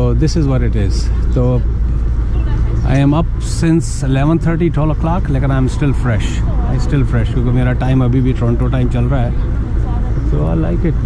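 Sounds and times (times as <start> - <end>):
man speaking: 0.0 - 1.7, 2.8 - 9.4, 10.2 - 11.0
low rumble of street noise: 0.0 - 11.0.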